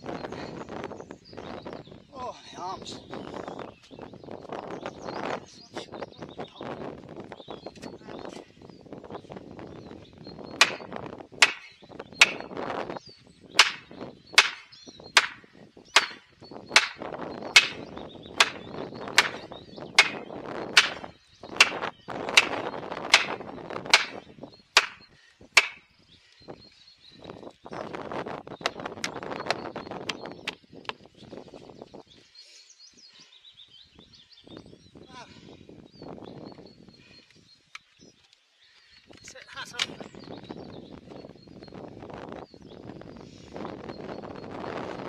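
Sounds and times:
axe striking plastic wedges: 10.6 - 12.5, 13.6 - 15.4, 16.0 - 16.2, 17.6 - 17.8, 19.2 - 19.4, 20.0 - 20.2, 20.8 - 21.0, 22.4 - 24.2, 24.8 - 25.0, 25.6 - 25.8.

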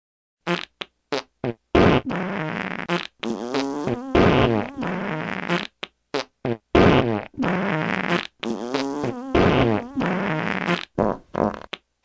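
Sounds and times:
farts: 0.4 - 11.8.

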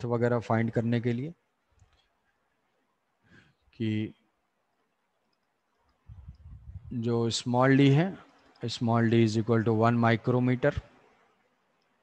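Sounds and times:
man speaking: 0.0 - 1.4, 3.8 - 4.2, 6.9 - 10.9.

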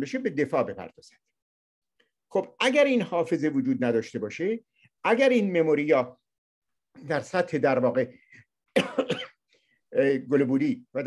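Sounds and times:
man speaking: 2.2 - 6.3, 6.9 - 8.4, 9.9 - 11.0
man coughing: 8.7 - 9.5.

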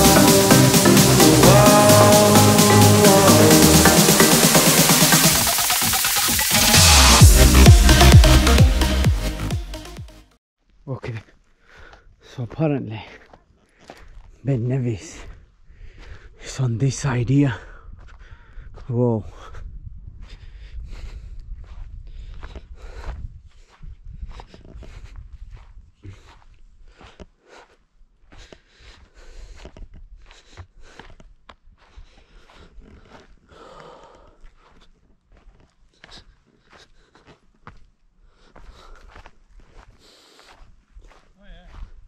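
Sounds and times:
footsteps on loose stones: 11.1 - 16.2, 21.5 - 42.0
wind rumbling on microphone: 19.5 - 26.0.

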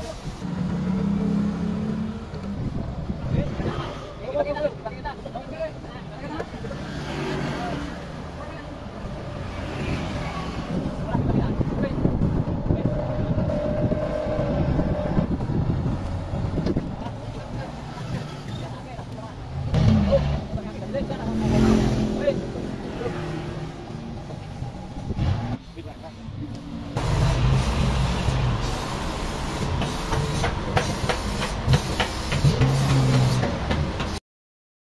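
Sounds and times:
people's voices: 2.4 - 29.2.

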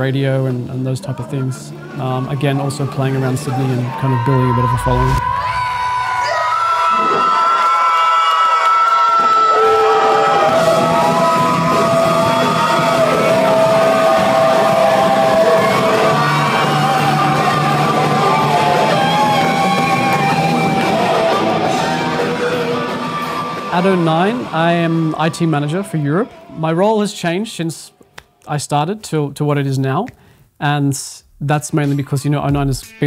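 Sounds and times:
drums: 0.0 - 26.8, 31.2 - 33.0
electric guitar: 9.5 - 24.5
bass guitar: 10.4 - 24.5.

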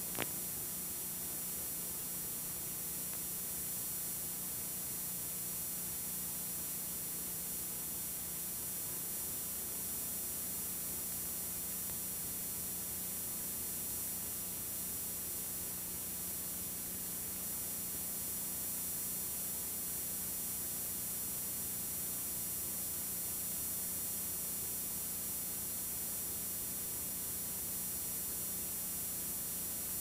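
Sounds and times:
tape hiss: 0.0 - 3.3.

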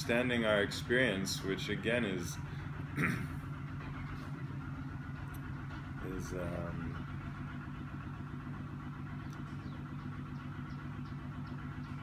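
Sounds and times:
construction machinery engine hum: 0.0 - 12.0.

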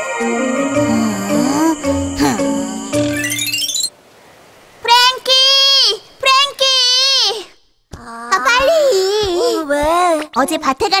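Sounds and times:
high voice singing held notes: 0.0 - 3.5.

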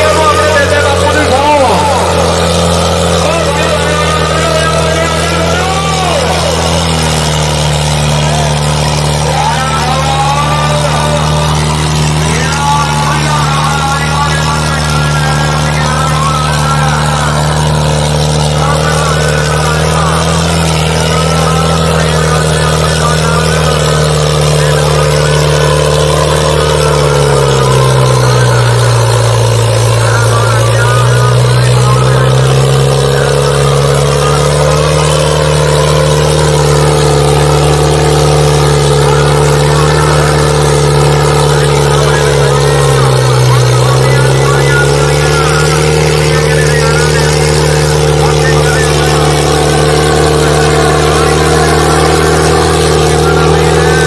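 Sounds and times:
tractor diesel engine running hard: 0.0 - 54.0.

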